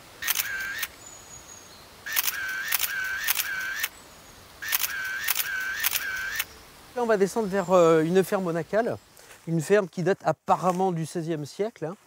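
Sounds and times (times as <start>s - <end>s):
camera shutter firing: 0.2s - 0.9s, 2.1s - 3.9s, 4.6s - 6.5s.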